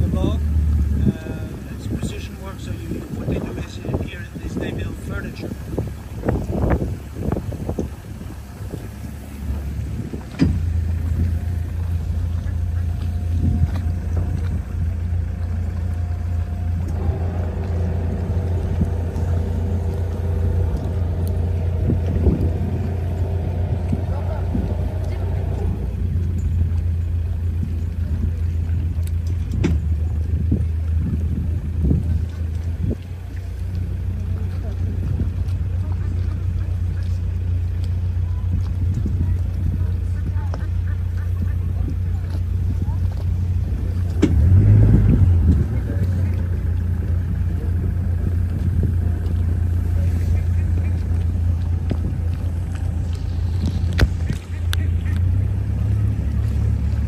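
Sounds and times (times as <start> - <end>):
higher steady tonal hum: 0.0 - 29.5, 33.3 - 57.0
boat motor humming: 0.0 - 57.0.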